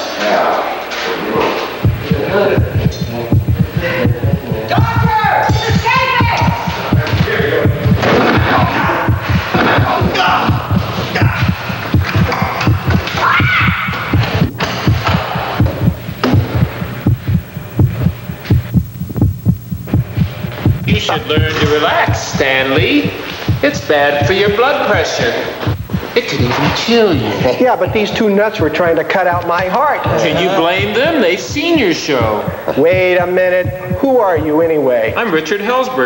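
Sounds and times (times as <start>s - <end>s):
sharp knocks: 1.8s - 25.0s
racing heartbeat thumps: 1.8s - 35.2s.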